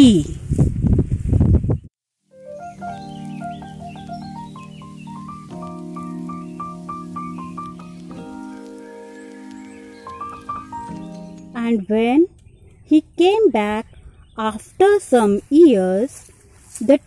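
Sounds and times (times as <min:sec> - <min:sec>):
soft instrumental music: 0:02.3 - 0:11.9.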